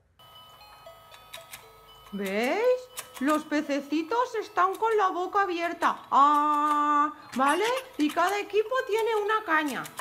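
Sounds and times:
faint electronic melody: 0:00.0 - 0:10.0
toy board clicks: 0:01.1 - 0:10.0.

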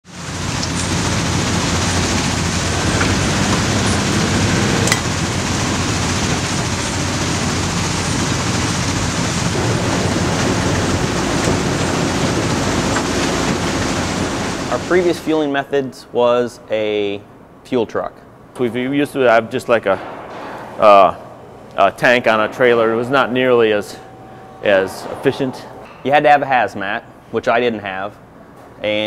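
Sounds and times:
heavy machinery roar: 0:00.1 - 0:15.2
low engine drone: 0:00.1 - 0:15.2.

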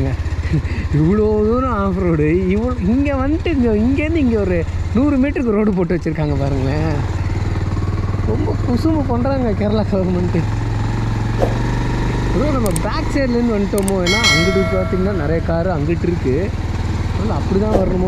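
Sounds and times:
motorcycle engine running: 0:00.0 - 0:18.0
person talking: 0:12.4 - 0:16.1
brief ringing tone: 0:14.1 - 0:15.7.

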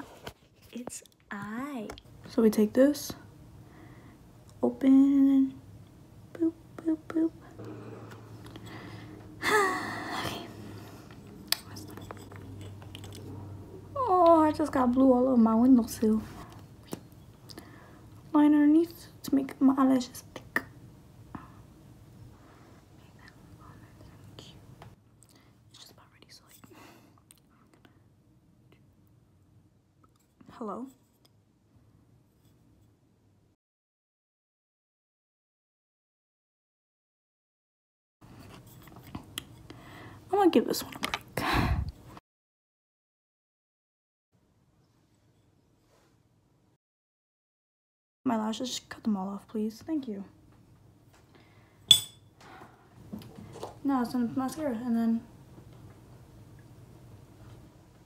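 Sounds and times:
woman whispering faintly: 0:23.1 - 0:24.7.

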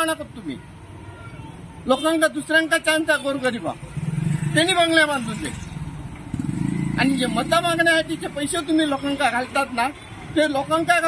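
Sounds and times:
scooter and motorcycle engines passing: 0:03.8 - 0:09.2.

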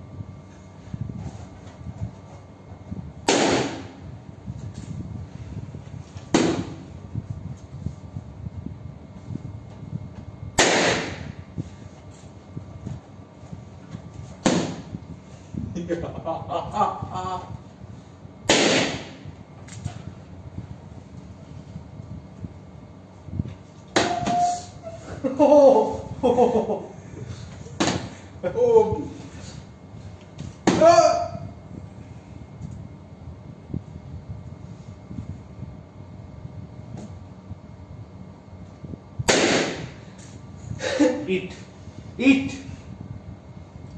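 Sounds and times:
man shouting: 0:30.7 - 0:31.5.

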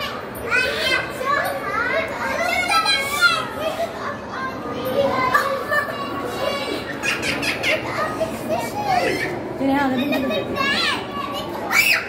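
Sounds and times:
background hubbub: 0:00.0 - 0:12.0
children calling out and chattering: 0:00.0 - 0:12.0.

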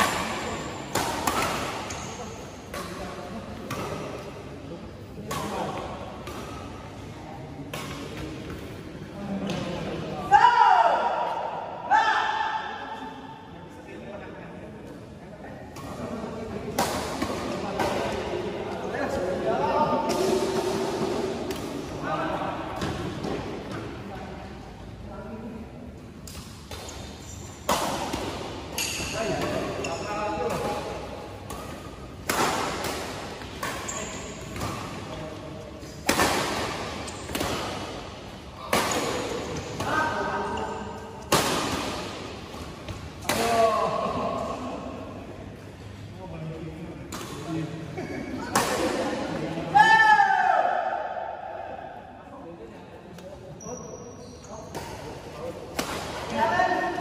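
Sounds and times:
badminton rackets hitting shuttlecock: 0:00.0 - 0:04.4, 0:07.6 - 0:08.6, 0:26.2 - 0:43.7, 0:54.7 - 0:57.0.

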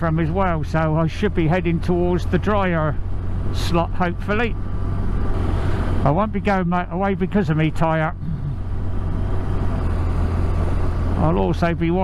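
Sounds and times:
motorcycle engine drone: 0:00.0 - 0:12.0
road and wind noise: 0:00.0 - 0:12.0.

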